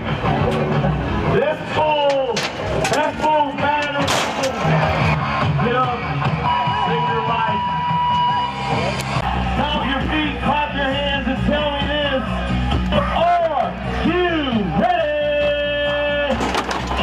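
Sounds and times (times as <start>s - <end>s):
music in an arena: 0.0s - 17.0s.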